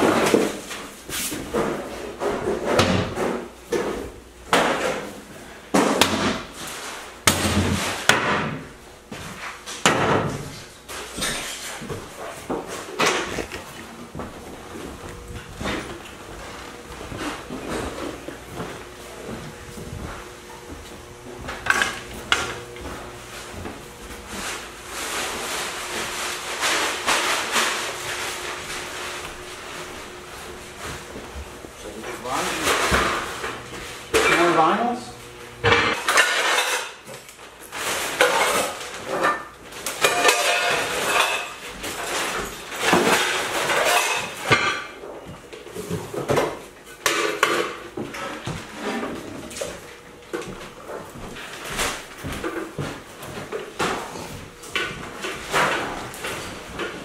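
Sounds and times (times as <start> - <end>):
dishes and cookware clattering: 9.7 - 13.8, 32.4 - 34.6, 35.6 - 45.2, 45.8 - 49.3.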